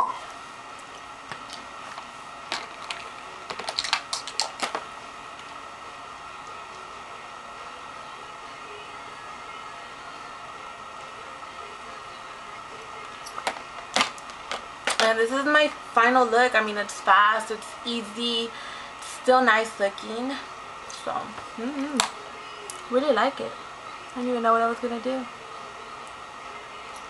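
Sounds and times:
faint steady hum: 0.0 - 27.0
objects clicking and tapping: 2.5 - 4.8.

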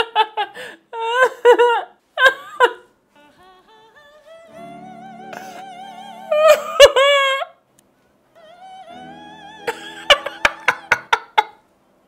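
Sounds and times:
man laughing: 6.3 - 7.5, 9.6 - 11.6.

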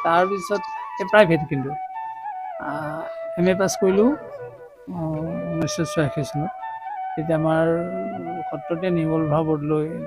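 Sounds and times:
man speaking: 0.0 - 1.8, 2.7 - 6.5, 7.2 - 10.0
flute melody music: 0.0 - 10.0.

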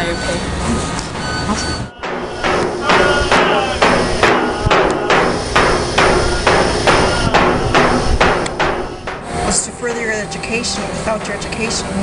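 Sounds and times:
sharp ringing knocks: 2.0 - 11.9.

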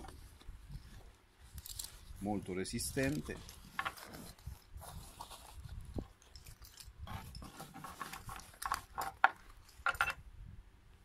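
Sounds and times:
canvas bag rustling: 0.0 - 9.8.

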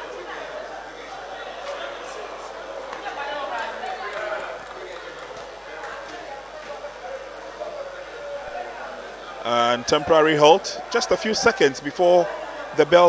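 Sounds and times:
spectators chattering: 0.0 - 13.0.

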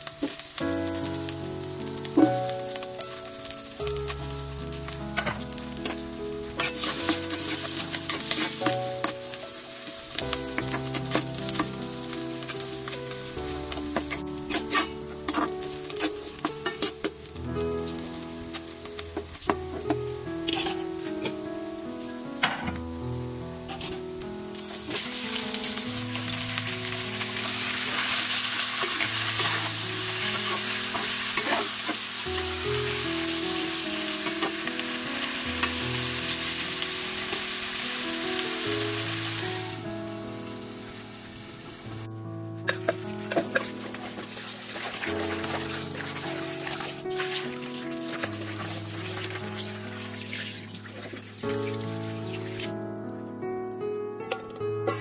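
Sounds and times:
food sizzling in oil: 0.0 - 52.9
metal ladle scraping wok: 6.6 - 9.2, 13.7 - 17.2, 19.5 - 21.4, 23.6 - 25.1, 27.5 - 32.2.

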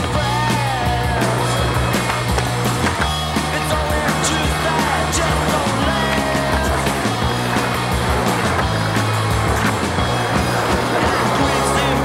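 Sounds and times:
music with bass line: 0.0 - 12.0
skateboard wheels rolling on concrete: 0.0 - 12.0
skateboard clicks: 0.6 - 12.0.

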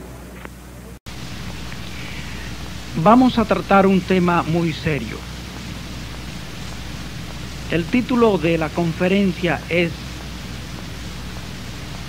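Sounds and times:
low hum: 0.0 - 12.0
recording hiss: 0.0 - 12.0.

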